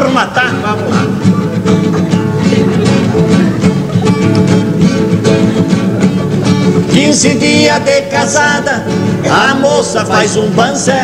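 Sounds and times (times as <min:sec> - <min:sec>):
acoustic guitars plucked and strummed: 0:00.0 - 0:11.0.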